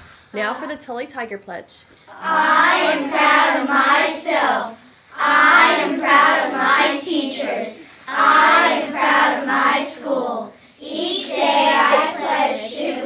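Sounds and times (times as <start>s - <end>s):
children reciting in unison: 2.1s - 13.0s.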